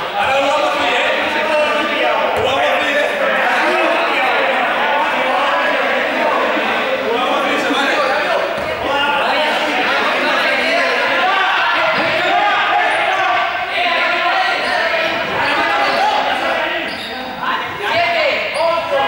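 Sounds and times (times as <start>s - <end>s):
players talking and calling: 0.0s - 19.0s
ball bouncing on court floor: 2.3s - 2.6s.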